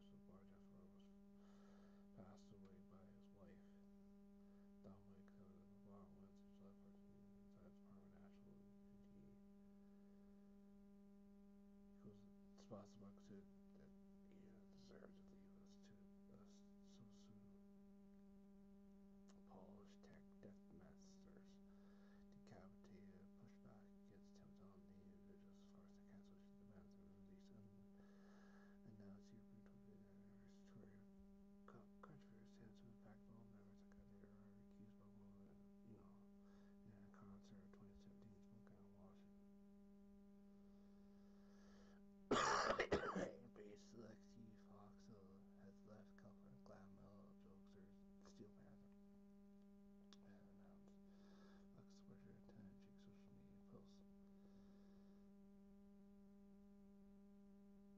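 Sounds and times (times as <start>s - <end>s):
faint electrical hum: 0.0s - 57.9s
person clearing throat: 42.3s - 43.5s.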